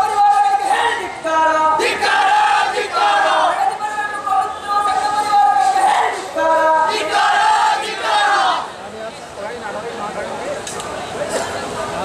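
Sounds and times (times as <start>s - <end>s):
group of men shouting: 1.8s - 3.8s.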